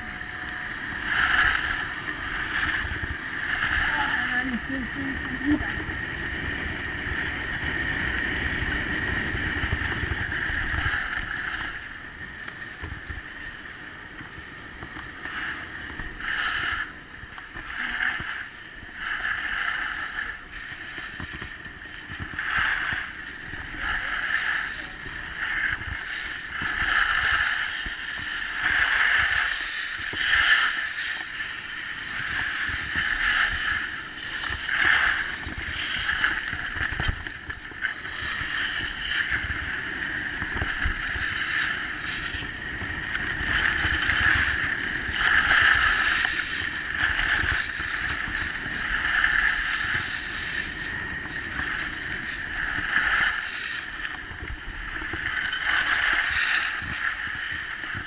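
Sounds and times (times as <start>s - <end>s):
skis scraping over snow: 0.0s - 58.0s
wind rumbling on microphone: 0.0s - 58.0s.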